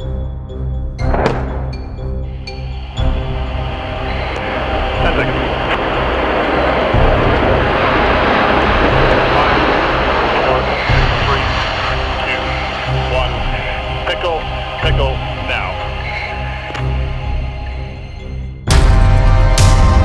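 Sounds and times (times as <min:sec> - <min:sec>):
music with deep pulse: 0:00.0 - 0:20.0
fighter jet takeoff roar: 0:01.0 - 0:20.0.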